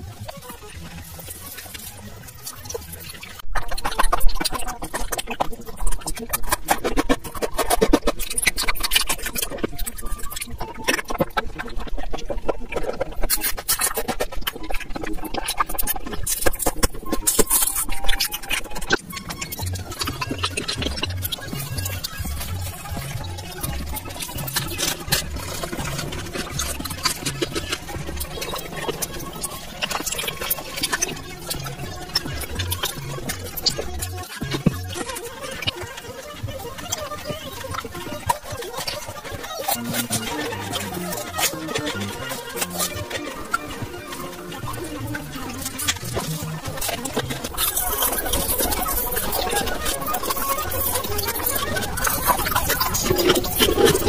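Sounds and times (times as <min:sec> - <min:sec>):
background music with low beat: 0:00.0 - 0:54.0
mouth licking and biting candy: 0:00.4 - 0:54.0.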